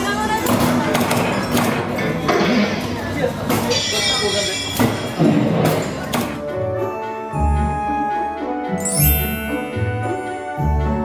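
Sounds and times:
voices: 0.0 - 6.2
background music: 3.7 - 11.0.

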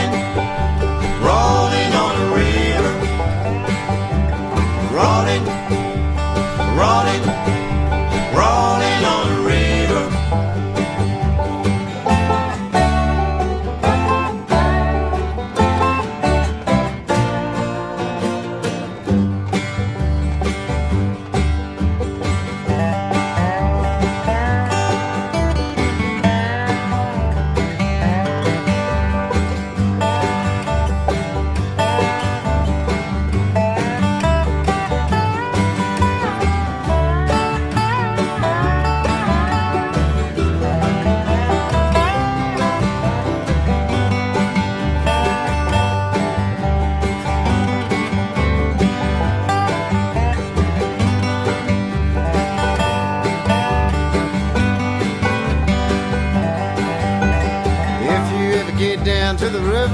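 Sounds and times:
bass: 0.0 - 59.9
plucked string lead melody: 0.0 - 59.9
strummed acoustic guitar: 0.0 - 59.9.

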